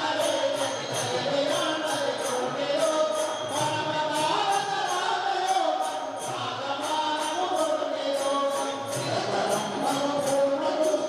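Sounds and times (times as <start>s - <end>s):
group singing a chant: 0.0s - 11.0s
jingling percussion: 0.0s - 11.0s.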